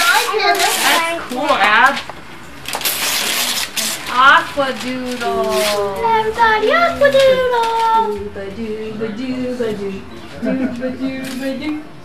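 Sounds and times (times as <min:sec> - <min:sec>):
wrapping paper rustling and tearing: 0:00.0 - 0:02.1, 0:02.7 - 0:06.2.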